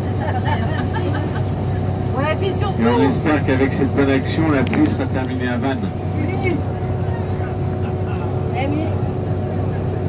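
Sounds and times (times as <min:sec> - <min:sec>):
coach engine drone: 0:00.0 - 0:10.0
faint passenger chatter: 0:00.0 - 0:10.0
road noise: 0:00.0 - 0:10.0.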